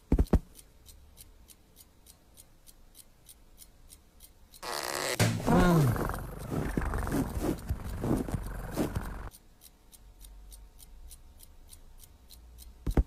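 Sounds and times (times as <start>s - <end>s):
faint ticking: 0.0s - 13.0s
cartoon cat growling: 5.4s - 9.3s.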